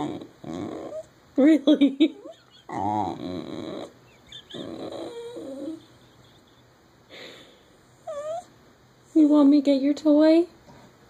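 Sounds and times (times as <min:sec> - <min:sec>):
dog whining: 0:00.0 - 0:01.1, 0:02.1 - 0:06.5, 0:08.0 - 0:08.5.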